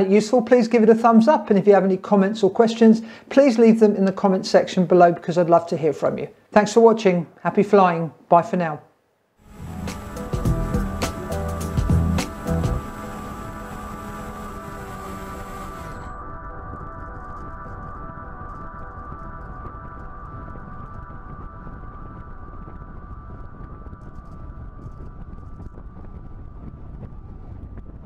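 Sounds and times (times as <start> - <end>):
steady hum of sustained tones: 9.4 - 27.7
wind rushing over microphone: 19.6 - 28.0.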